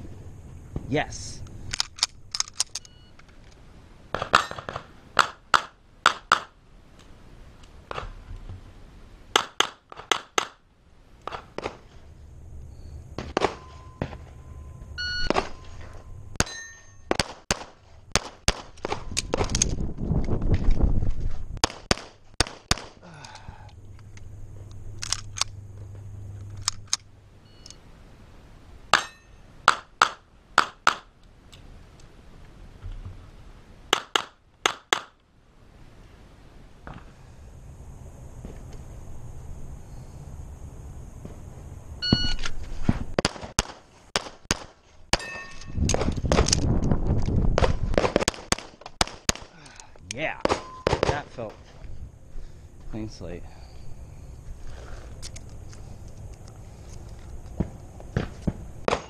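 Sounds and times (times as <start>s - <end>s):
low rumble: 11.9s - 16.4s
handgun shots: 21.6s - 23.0s.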